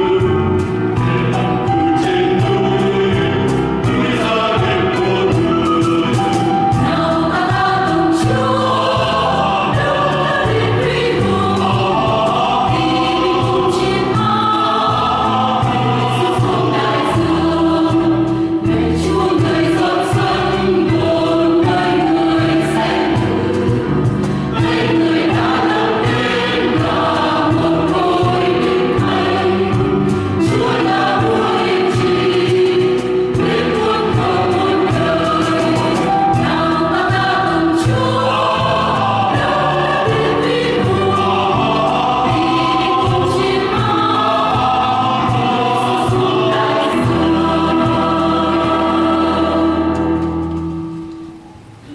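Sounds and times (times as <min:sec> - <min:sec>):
choir singing a hymn: 0:00.0 - 0:51.0.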